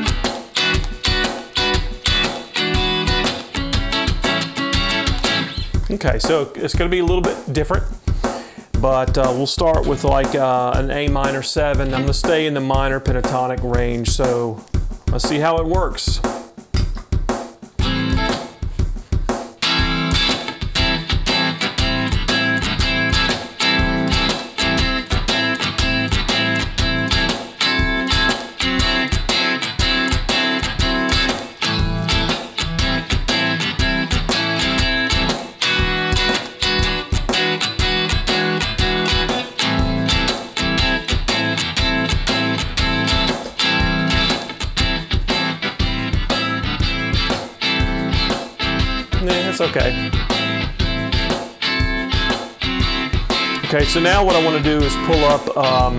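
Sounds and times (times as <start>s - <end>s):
electric guitar playing: 0.0s - 8.2s, 8.9s - 13.1s, 17.8s - 55.9s
drum loop: 0.0s - 55.9s.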